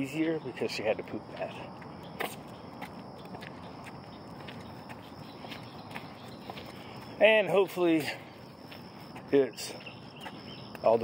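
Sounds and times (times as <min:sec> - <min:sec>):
quiet footsteps: 0:00.0 - 0:11.0.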